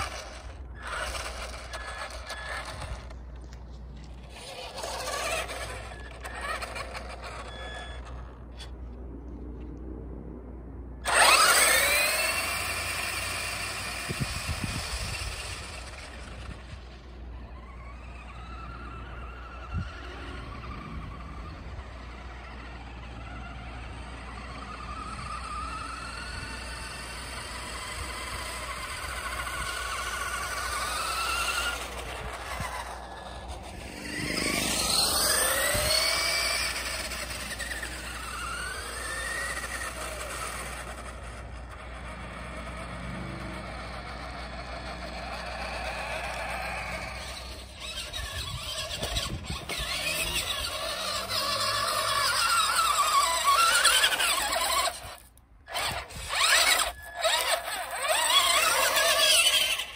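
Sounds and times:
toy truck electric motor whining: 0.0s - 8.8s, 11.0s - 59.9s.

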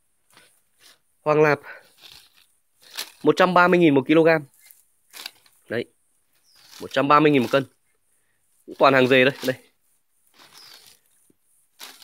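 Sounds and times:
rustling of plants being handled: 0.1s - 12.0s.

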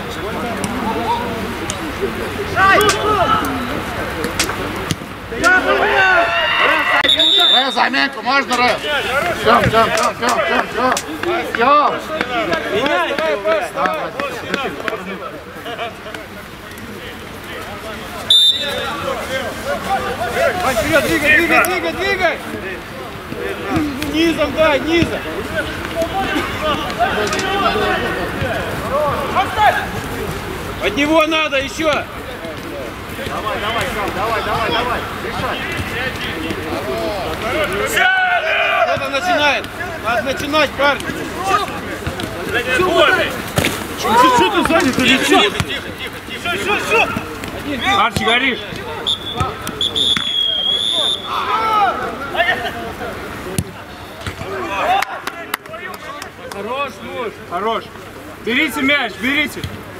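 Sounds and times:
voices calling and shouting: 0.0s - 59.9s.

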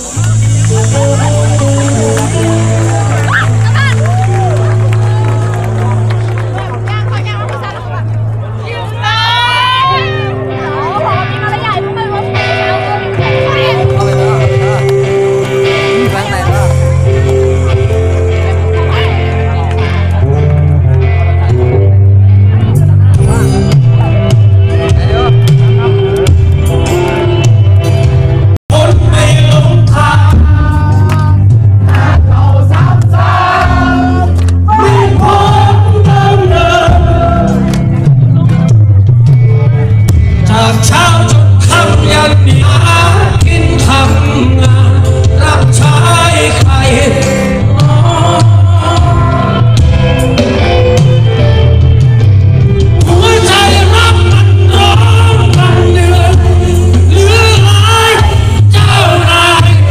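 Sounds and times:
live rock band playing: 0.0s - 59.9s
many voices singing together: 28.7s - 37.7s.

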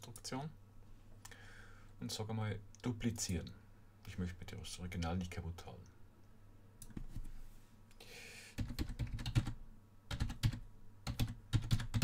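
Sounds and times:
computer keyboard typing: 8.6s - 12.0s.

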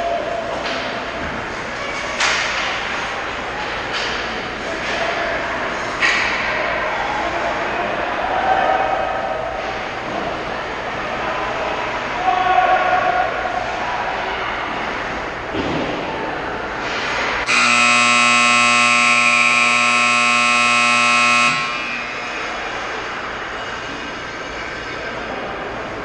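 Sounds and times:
hum of ice rink: 0.0s - 26.0s
scoreboard horn blast: 17.4s - 22.4s.

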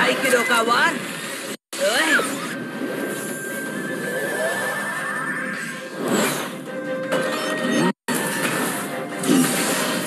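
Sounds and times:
rising electronic whine: 2.4s - 6.0s
wavering high tone: 2.9s - 6.0s.

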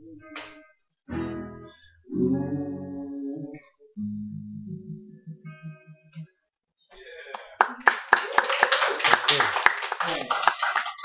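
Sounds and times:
audience applauding: 7.0s - 11.0s.

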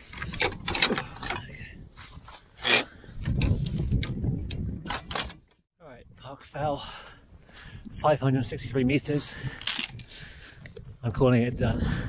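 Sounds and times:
wind gusts on microphone: 0.0s - 12.0s.

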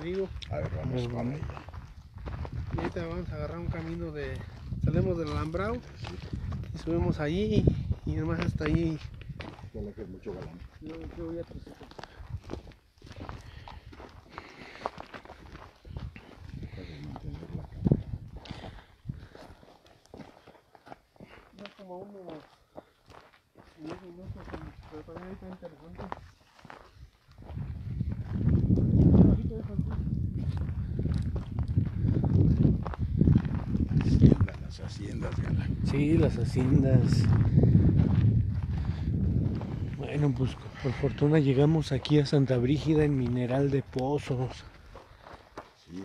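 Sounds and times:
footsteps on gravel: 0.0s - 46.0s.

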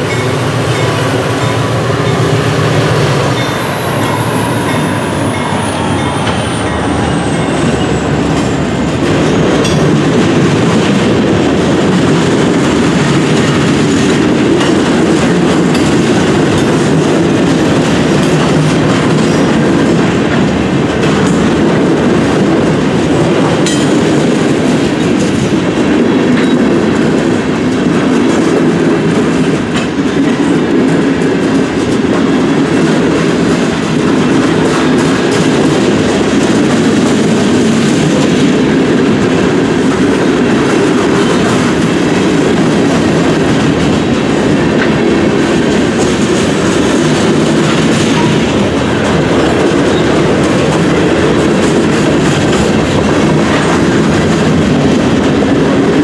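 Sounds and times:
clickety-clack over rail joints: 0.0s - 56.0s
freight train wheels rumbling: 0.0s - 56.0s
locomotive whine: 0.0s - 56.0s.

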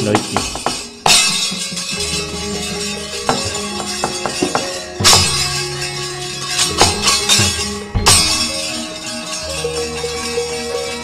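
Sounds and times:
metal plates clashing: 0.0s - 11.0s
ringing bronze gong tones: 0.6s - 11.0s.

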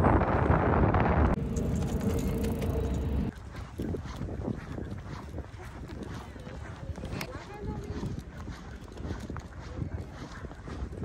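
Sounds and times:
wind on microphone: 0.0s - 11.0s
footsteps on paved path: 1.4s - 11.0s.

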